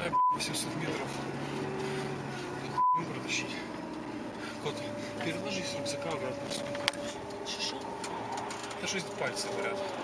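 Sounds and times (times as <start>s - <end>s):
car engine and road hum: 0.0s - 10.0s
muffled talk in car: 0.0s - 10.0s.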